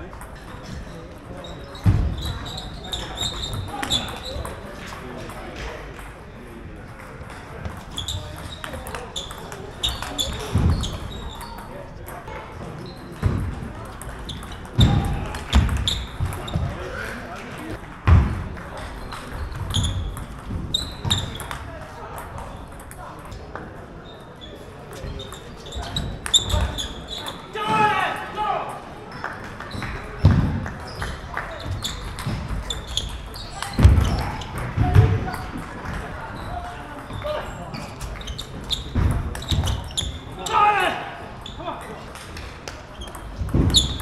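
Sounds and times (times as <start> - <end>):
table tennis balls bouncing: 0.0 - 6.2, 6.8 - 16.9, 17.7 - 27.8, 29.0 - 40.5, 41.4 - 44.0.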